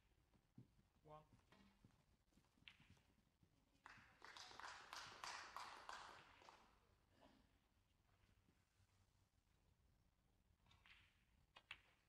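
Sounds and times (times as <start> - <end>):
light applause: 3.8 - 6.6.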